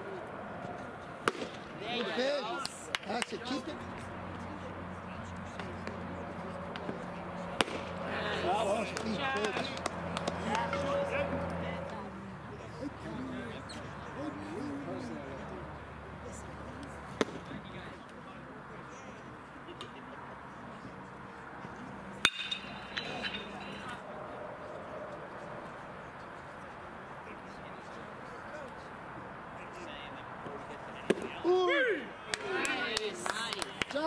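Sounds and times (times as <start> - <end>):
players calling out: 0.0 - 18.2, 21.6 - 27.6
ballpark background noise: 0.0 - 34.0
baseball popping into mitt: 7.6 - 8.0, 17.2 - 17.5
sharp ringing crack: 22.2 - 24.0.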